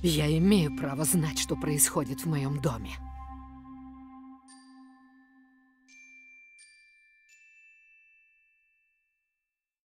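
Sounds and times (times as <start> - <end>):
high bell-like chime: 4.3 - 9.5.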